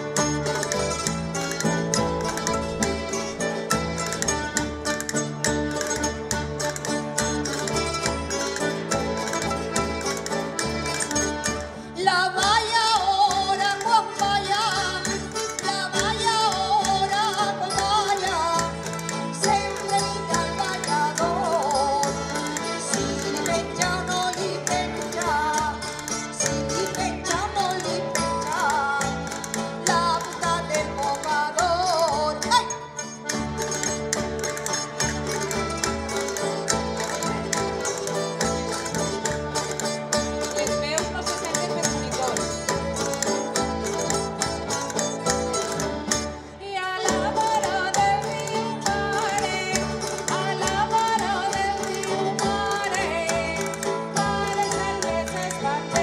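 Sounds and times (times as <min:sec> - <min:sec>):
plucked string ensemble strumming: 0:00.0 - 0:56.0.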